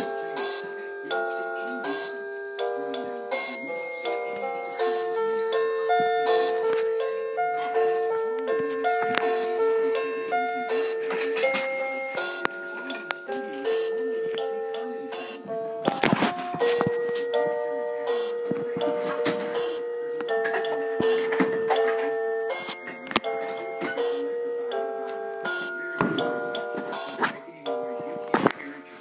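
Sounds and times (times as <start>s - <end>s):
toy keyboard tune: 0.0s - 28.8s.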